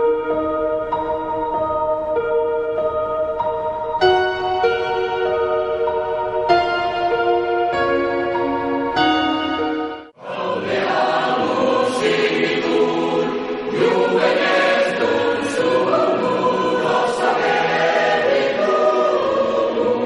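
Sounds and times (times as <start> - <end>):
choir singing held chords: 10.0 - 20.0.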